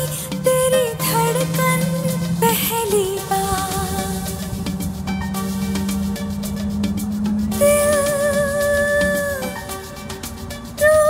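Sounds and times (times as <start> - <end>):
held sung note with vibrato: 0.0 - 10.2.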